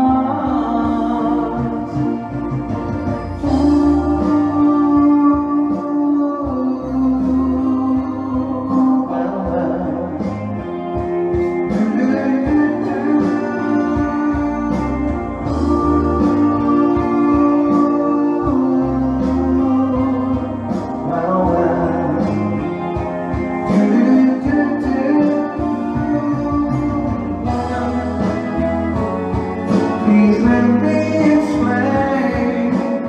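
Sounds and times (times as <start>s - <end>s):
man singing into microphone: 0.0s - 33.0s
pop backing track with guitar: 0.0s - 33.0s.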